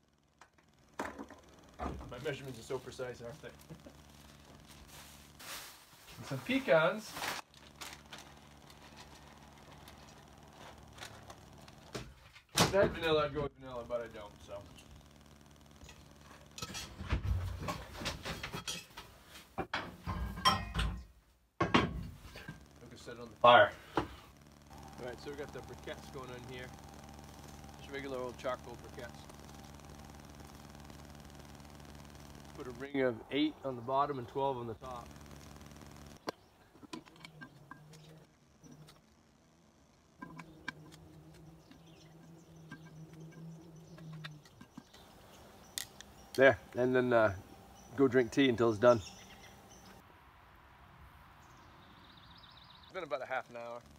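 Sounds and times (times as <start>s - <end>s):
cast iron pot and utensils clinking: 19.7s - 21.0s
faint low hum: 21.7s - 53.9s.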